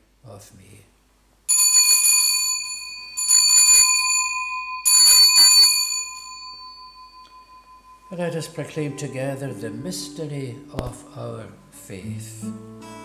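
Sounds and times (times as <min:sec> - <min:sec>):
altar bell ringing: 0:01.5 - 0:10.6.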